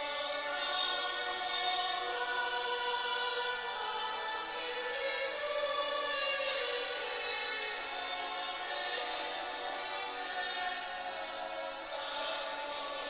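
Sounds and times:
choir singing: 0.0 - 13.0.

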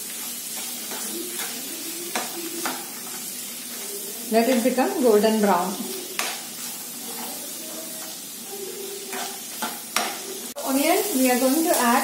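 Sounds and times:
food sizzling in hot oil: 0.0 - 12.0
steel spoon scraping a pan: 0.1 - 12.0.

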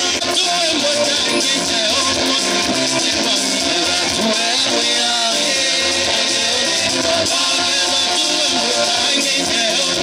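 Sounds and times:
music with singing: 0.0 - 10.0.

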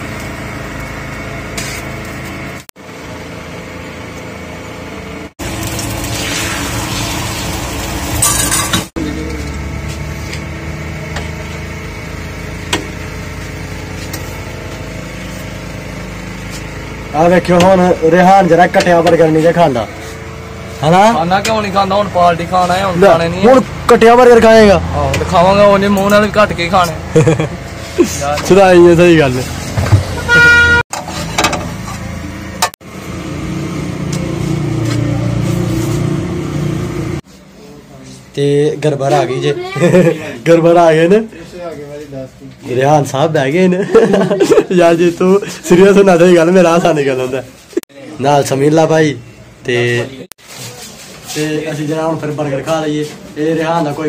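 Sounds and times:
mechanical hum: 0.0 - 54.0
vehicle horn toot: 30.1 - 30.9.

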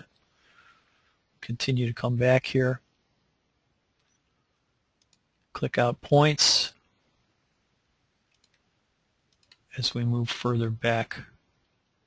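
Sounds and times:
computer mouse clicks: 5.0 - 5.5, 8.2 - 8.7, 9.3 - 9.7.

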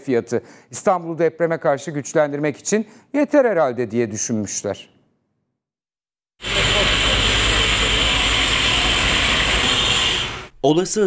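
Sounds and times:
construction machinery noise: 6.4 - 10.5.

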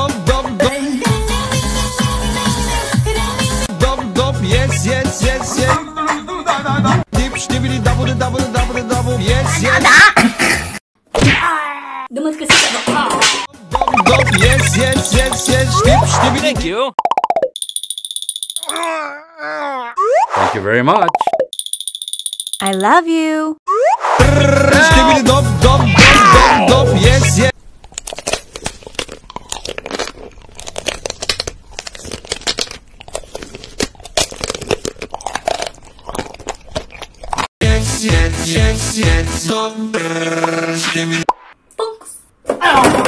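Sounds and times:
wavering voice-like sound: 13.9 - 16.4, 18.6 - 20.6, 23.7 - 27.1
crunchy biting and chewing: 27.6 - 37.5.

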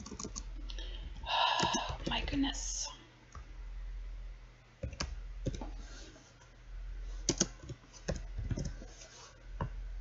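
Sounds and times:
computer keyboard keystrokes: 0.0 - 0.5, 1.6 - 2.2, 4.8 - 5.6, 7.3 - 8.8
low steady hum: 0.0 - 10.0.

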